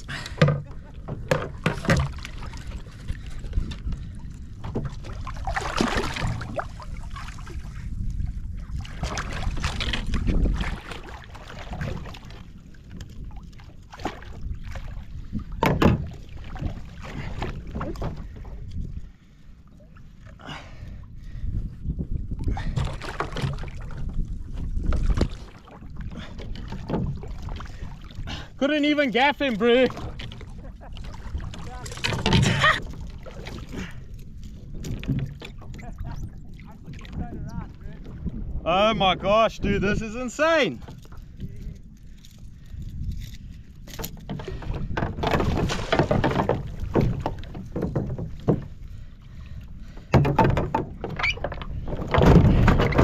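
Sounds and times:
water splashing: 0.0 - 15.2, 24.8 - 41.5, 44.2 - 53.0
knocks against a kayak: 0.4 - 2.3, 15.6 - 16.2, 44.0 - 48.7, 50.0 - 53.0.

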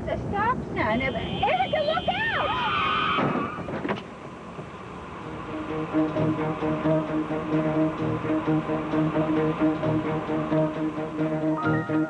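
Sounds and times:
woman speaking: 0.0 - 2.6.

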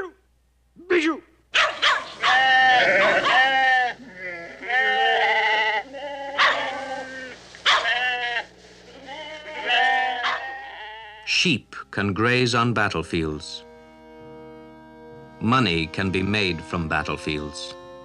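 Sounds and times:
sheep bleating: 2.2 - 11.3.

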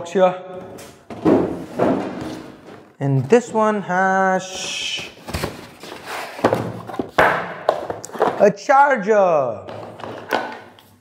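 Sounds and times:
cardboard rustling: 4.6 - 8.4.

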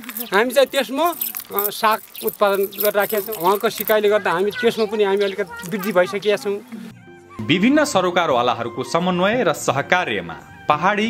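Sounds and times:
man speaking animatedly: 0.2 - 6.7.

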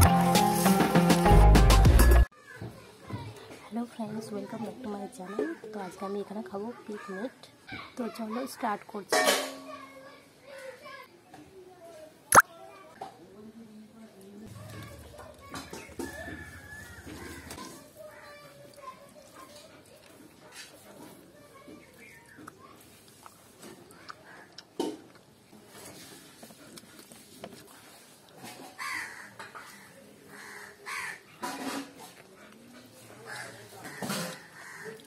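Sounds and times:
faint voices: 2.4 - 35.0
fingers squelching rice and curry: 14.7 - 28.7.

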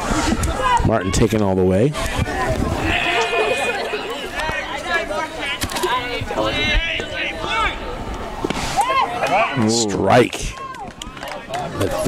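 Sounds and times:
people calling out: 2.0 - 7.4
long high call: 2.8 - 5.4.

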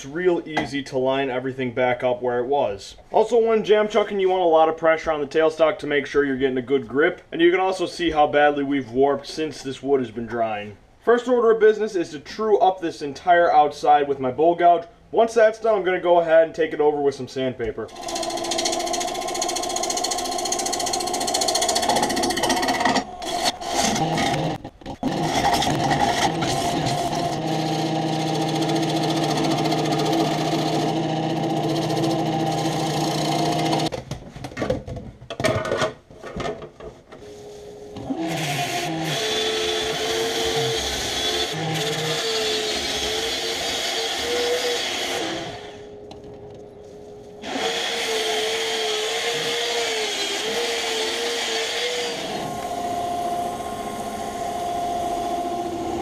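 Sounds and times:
wood lathe running: 17.9 - 33.9, 38.0 - 45.8, 47.4 - 56.0.

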